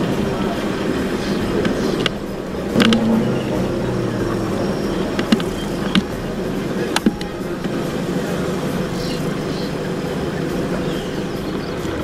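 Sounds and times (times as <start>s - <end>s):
road and dust noise: 0.0s - 12.0s
vehicle engine droning: 0.0s - 12.0s.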